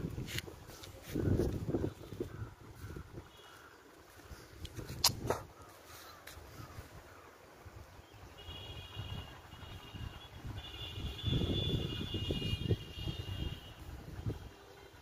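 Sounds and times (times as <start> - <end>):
wind rumbling on microphone: 0.0 - 5.7, 6.4 - 15.0.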